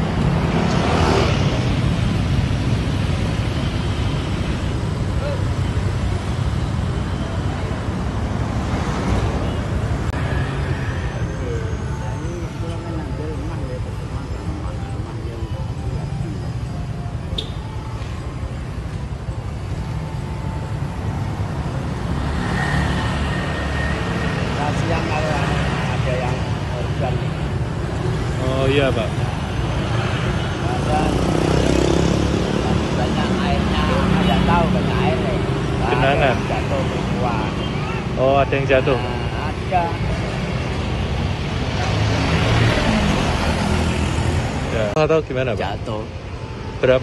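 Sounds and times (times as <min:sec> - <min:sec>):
cars and motorcycles passing: 0:00.0 - 0:47.0.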